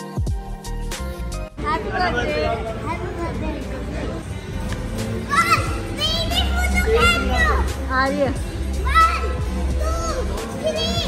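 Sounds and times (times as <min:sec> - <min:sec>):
background music with bass: 0:00.0 - 0:11.0
children calling out excitedly: 0:05.1 - 0:11.0.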